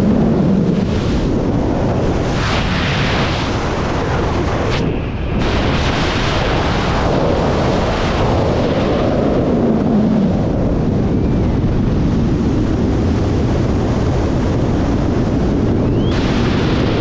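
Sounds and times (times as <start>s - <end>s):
wind buffeting a microphone: 0.0s - 17.0s.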